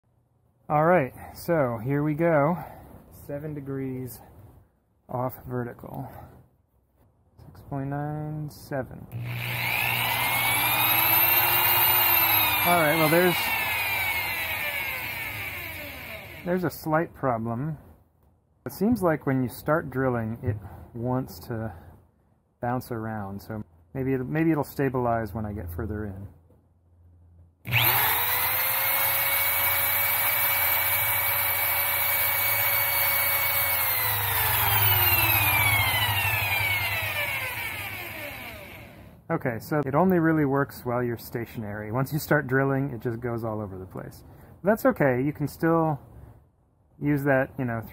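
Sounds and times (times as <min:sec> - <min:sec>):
electric drill boring into wood: 0:09.2 - 0:16.6, 0:27.7 - 0:39.1.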